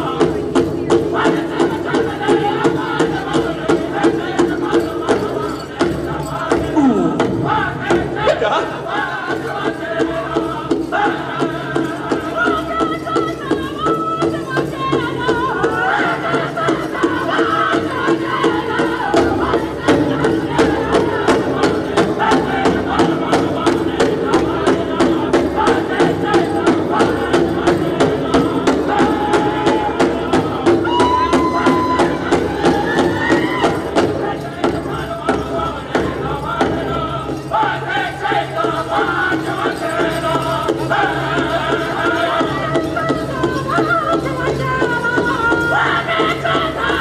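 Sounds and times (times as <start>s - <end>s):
fast beat on big drum: 0.0s - 47.0s
high voices chanting together: 0.0s - 47.0s.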